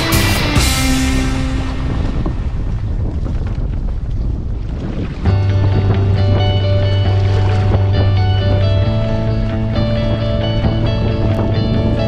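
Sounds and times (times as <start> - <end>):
background music: 0.0 - 2.6, 5.3 - 12.0
water rushing along a hull: 0.0 - 12.0
wind buffeting microphone: 0.0 - 12.0.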